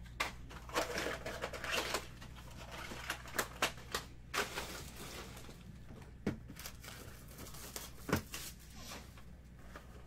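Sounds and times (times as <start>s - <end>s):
boxes scraping and rustling: 4.4s - 5.6s.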